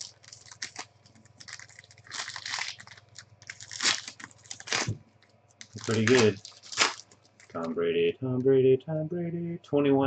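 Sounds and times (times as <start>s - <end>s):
plastic wrapping crinkling and tearing: 0.0s - 7.8s.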